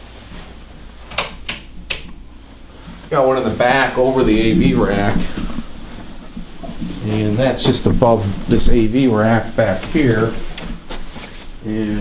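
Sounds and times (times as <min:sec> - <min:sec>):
low room hum: 0:00.0 - 0:12.0
footsteps on hard floor: 0:02.4 - 0:11.6.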